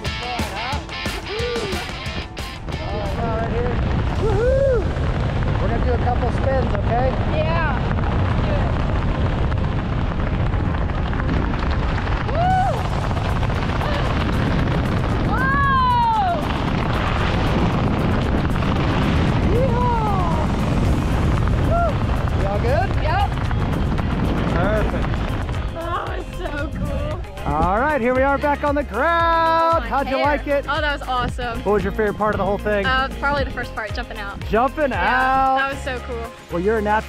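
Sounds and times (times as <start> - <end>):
person whooping and screaming: 1.2 - 1.9, 4.1 - 5.0, 12.3 - 12.9, 15.3 - 16.5, 19.5 - 20.4, 21.7 - 22.0
wind rushing over microphone: 1.3 - 36.8.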